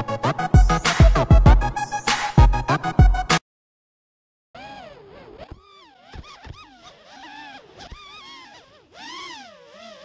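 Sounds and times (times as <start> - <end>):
quadcopter motors whining: 4.6 - 10.0.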